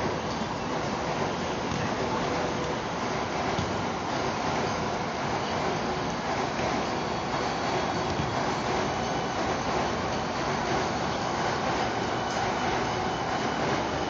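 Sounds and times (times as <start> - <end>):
steady rushing noise: 0.0 - 14.0.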